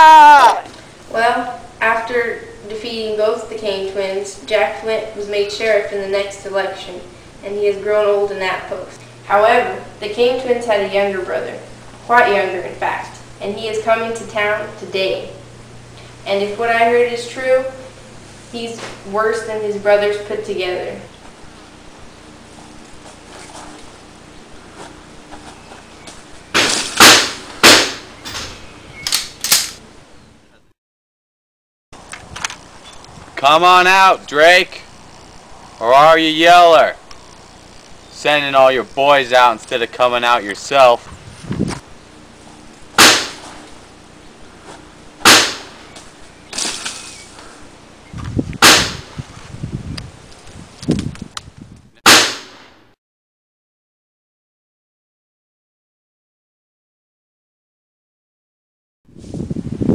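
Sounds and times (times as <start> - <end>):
sharp gunshots: 26.6 - 28.5, 42.9 - 43.6, 45.2 - 45.8, 48.6 - 49.1, 52.0 - 52.8
pistol shots echoing: 45.2 - 45.8.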